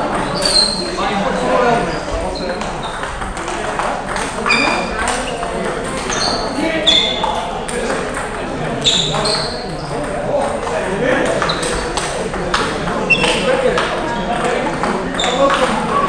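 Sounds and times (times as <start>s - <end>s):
table tennis balls clicking: 2.4s - 16.0s.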